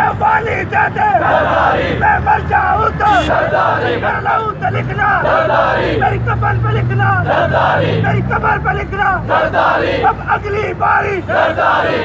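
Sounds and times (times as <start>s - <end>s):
crowd of men shouting in unison: 0.0s - 8.6s, 9.2s - 12.0s.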